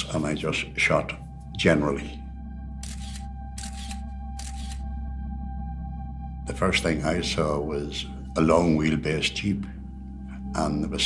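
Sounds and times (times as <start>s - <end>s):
low music drone: 0.0s - 11.0s
camera shutter firing: 2.8s - 4.8s.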